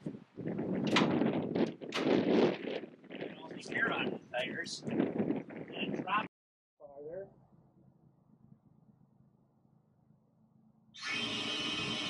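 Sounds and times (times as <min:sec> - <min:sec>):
wind gusts on microphone: 0:00.0 - 0:06.3.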